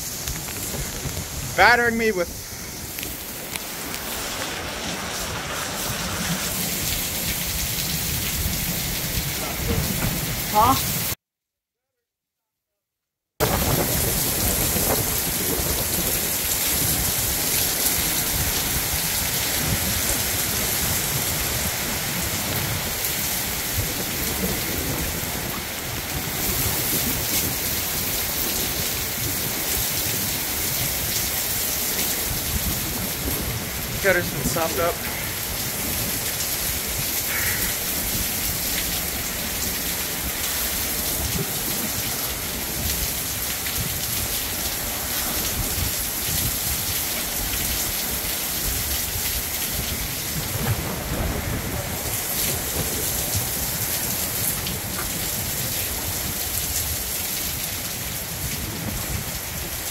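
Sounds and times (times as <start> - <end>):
heavy rain pouring: 0.0 - 11.2, 13.4 - 59.9
wind gusts buffeting microphone: 0.0 - 11.2, 13.4 - 59.9.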